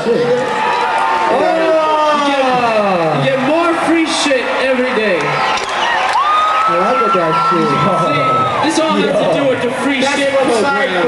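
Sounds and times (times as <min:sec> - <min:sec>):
concert crowd noise: 0:00.0 - 0:11.0.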